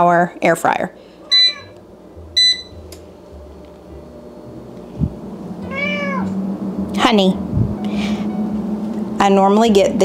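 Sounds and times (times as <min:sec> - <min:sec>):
air fryer humming: 0:00.0 - 0:10.0
control panel beep: 0:01.3 - 0:01.7, 0:02.4 - 0:02.8
cat meowing: 0:05.6 - 0:06.3.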